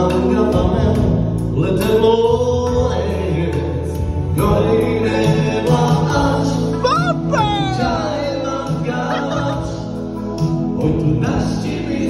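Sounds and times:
man singing into microphone: 0.0s - 12.0s
steady bass line: 0.0s - 12.0s.

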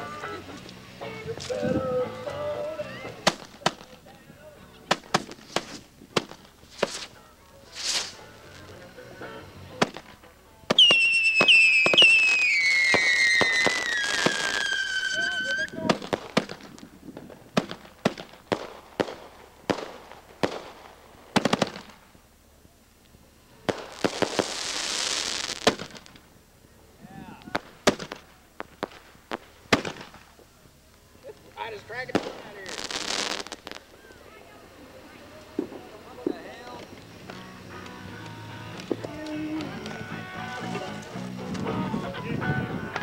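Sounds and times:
firework hiss: 0.0s - 43.0s
firework bangs and cracks: 3.1s - 4.2s, 4.9s - 8.7s, 9.8s - 22.2s, 23.6s - 26.4s, 27.3s - 30.5s, 31.3s - 41.7s
firework whistles sliding down: 6.6s - 8.3s, 10.7s - 16.8s.

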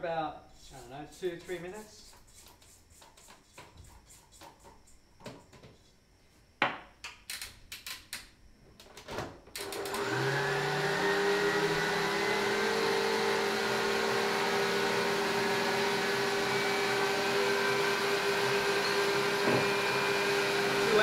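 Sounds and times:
stand mixer motor whining: 9.6s - 21.0s.

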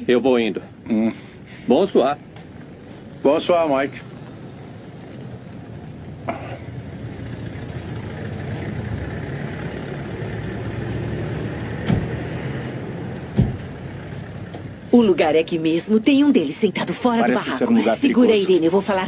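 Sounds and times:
low thud: 11.8s - 12.2s, 13.3s - 13.7s
sharp knock: 11.8s - 12.2s, 13.4s - 13.6s.

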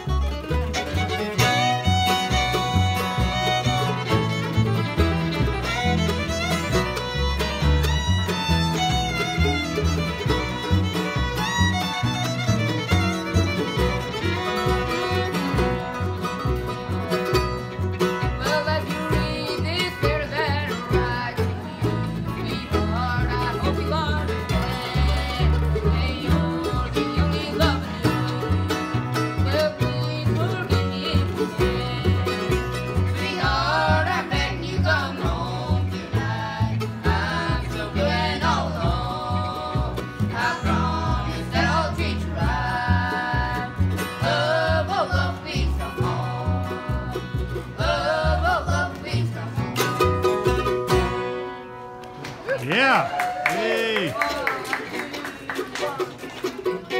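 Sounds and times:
fiddle: 0.0s - 51.9s
upright bass: 0.0s - 54.8s
acoustic guitar: 0.0s - 56.9s
mandolin: 0.0s - 56.9s.

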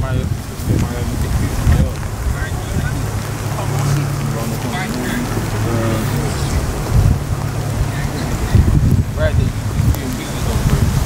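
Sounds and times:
faint voices talking: 0.0s - 11.0s
wind buffeting microphone: 0.0s - 11.0s.

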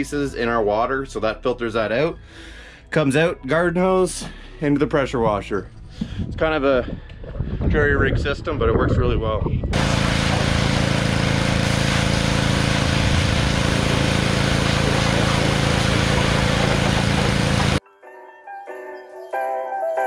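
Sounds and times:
pressure washer engine hum: 9.8s - 17.8s
water spray hissing: 9.8s - 17.8s
light music with mallet notes: 17.8s - 20.0s.

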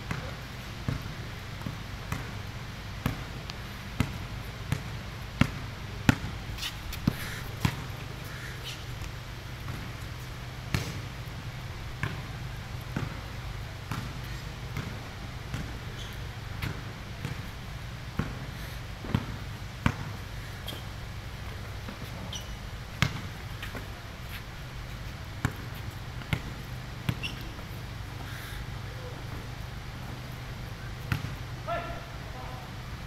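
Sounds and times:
steady low hum: 0.0s - 33.0s
basketball bouncing on concrete: 4.0s - 7.9s, 10.7s - 11.0s, 12.0s - 12.3s, 12.9s - 13.2s, 13.9s - 14.1s, 14.7s - 15.8s, 16.6s - 17.5s, 18.2s - 18.4s, 19.0s - 20.2s, 23.0s - 23.9s, 25.4s - 27.6s, 31.0s - 31.4s
short high squeaks: 22.2s - 22.6s, 27.2s - 27.6s.

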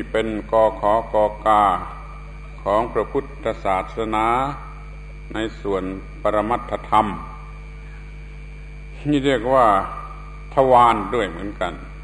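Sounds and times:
man speaking: 0.0s - 7.5s, 9.0s - 12.0s
low mains hum: 0.0s - 12.0s
thin steady tones: 0.0s - 12.0s.

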